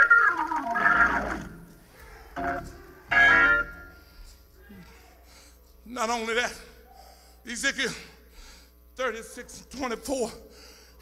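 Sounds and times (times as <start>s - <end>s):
church organ: 0.0s - 4.3s.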